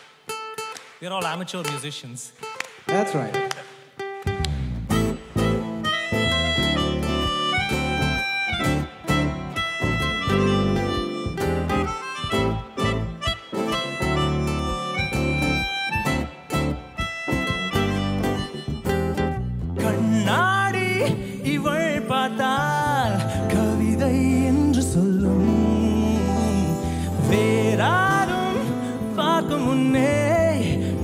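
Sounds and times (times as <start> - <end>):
acoustic guitars: 0.0 - 31.0
high held-note melody: 4.3 - 30.2
person singing: 19.8 - 31.0.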